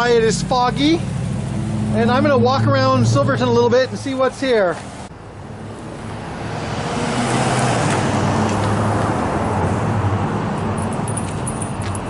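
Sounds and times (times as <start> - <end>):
passing car traffic: 0.0 - 12.0.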